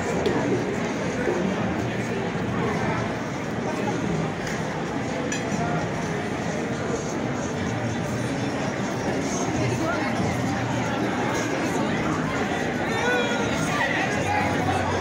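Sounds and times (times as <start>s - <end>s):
babble of people talking: 0.0s - 15.0s.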